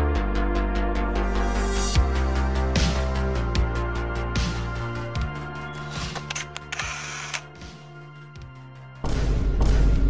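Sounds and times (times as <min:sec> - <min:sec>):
camera shutter clicks: 0:05.8 - 0:07.5.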